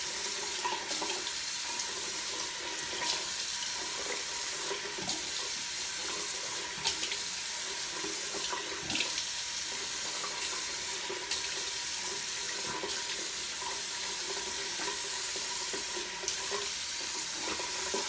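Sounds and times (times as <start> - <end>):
sink tap running: 0.0 - 18.0.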